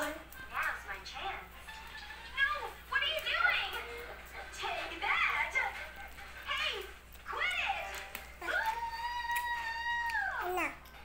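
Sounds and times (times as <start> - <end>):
toddler vocalizing: 10.4 - 10.9.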